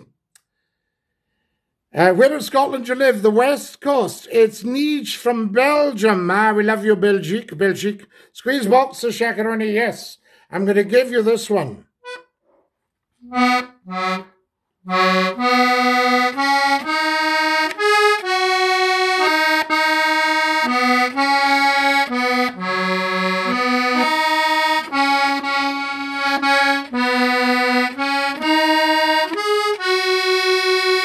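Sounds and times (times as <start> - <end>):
accordion playing: 12.0 - 12.5, 13.2 - 31.0.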